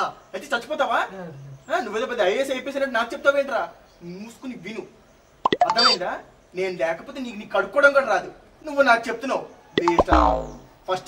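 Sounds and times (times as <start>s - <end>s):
sharp clicks: 5.5s - 6.0s, 9.8s - 10.6s.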